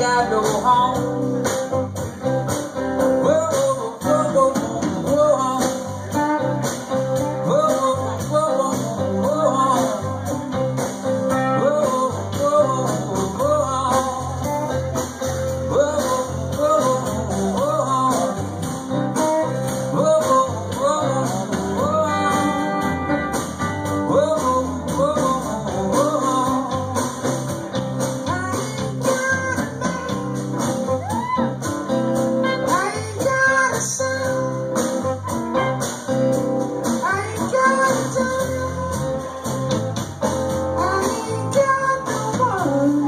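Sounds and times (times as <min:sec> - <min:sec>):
live rock band playing: 0:00.0 - 0:43.0
sliding lead guitar line: 0:00.0 - 0:43.0.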